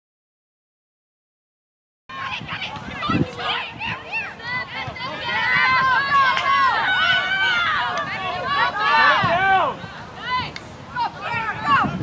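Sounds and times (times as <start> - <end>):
high-pitched voices shouting: 2.1 - 12.0.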